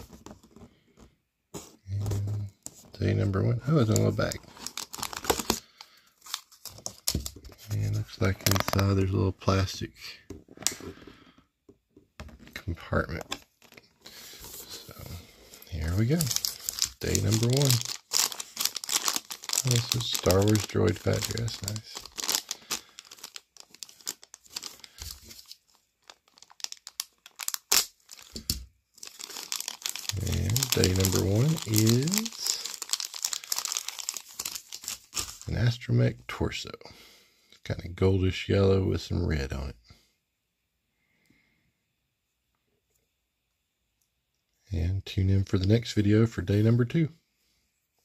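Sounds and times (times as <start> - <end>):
plastic bag crinkling: 3.8 - 7.4, 13.3 - 35.5.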